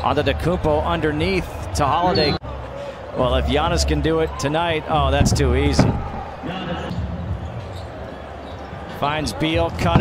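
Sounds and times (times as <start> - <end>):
ambient court sound: 0.0 - 10.0.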